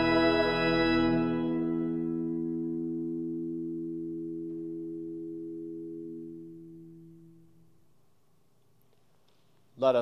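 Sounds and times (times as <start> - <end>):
pipe organ soft chord: 0.0 - 7.7.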